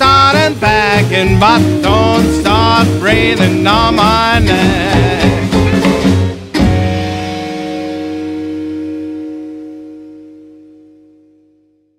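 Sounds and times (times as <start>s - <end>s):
rockabilly band playing: 0.0s - 11.0s.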